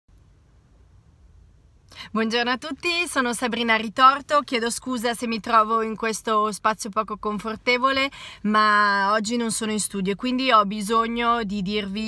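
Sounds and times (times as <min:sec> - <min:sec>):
faint low rumble with hiss: 0:00.1 - 0:12.0.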